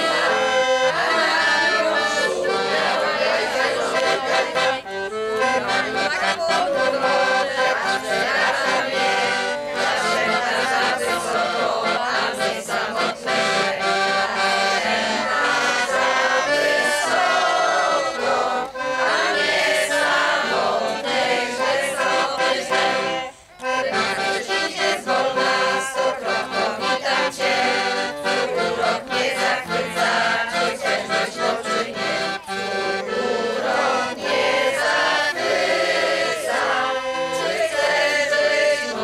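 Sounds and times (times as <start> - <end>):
accordion: 0.0 - 39.0
children and adults singing: 0.0 - 39.0.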